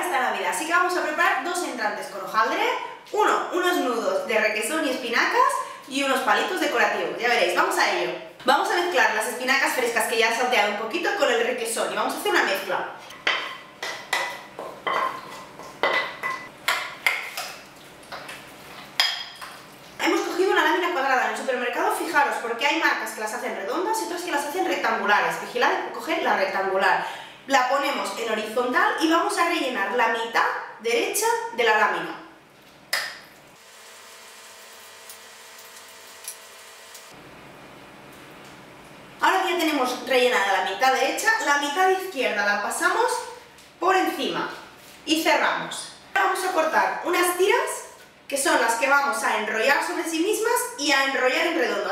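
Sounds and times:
woman talking: 0.0 - 13.0, 20.0 - 32.3, 39.2 - 51.9.

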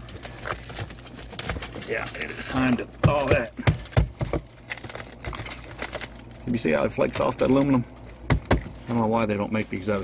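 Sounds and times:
frost crackling and snapping: 0.0 - 10.0.

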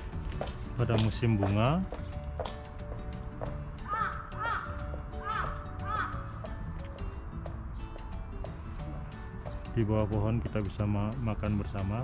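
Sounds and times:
background music with held notes: 0.0 - 12.0
crow cawing: 3.8 - 6.6.

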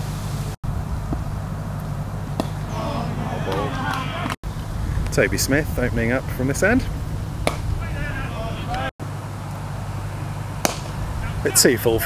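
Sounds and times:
cricket ball hitting bat: 2.4 - 2.8, 7.4 - 7.7, 10.6 - 11.0
faint voices calling out: 2.6 - 4.4, 7.7 - 8.9, 11.0 - 12.0
wind buffeting microphone: 4.4 - 8.9.

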